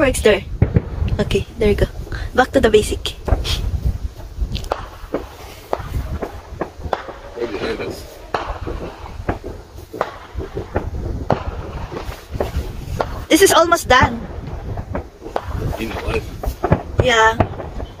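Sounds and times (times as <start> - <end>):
distant fireworks popping and banging: 0.0 - 18.0
faint voices: 5.4 - 9.2.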